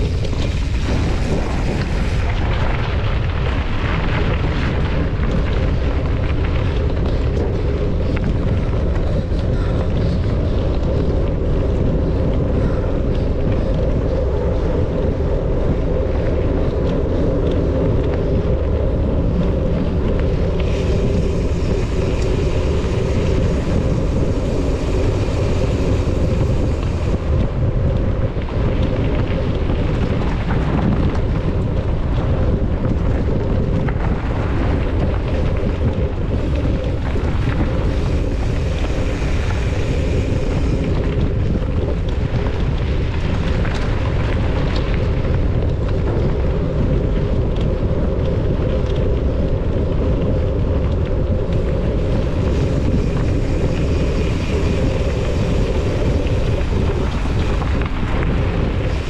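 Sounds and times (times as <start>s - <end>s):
bike tyres rolling on gravel: 0.0s - 59.0s
wind buffeting microphone: 0.0s - 59.0s.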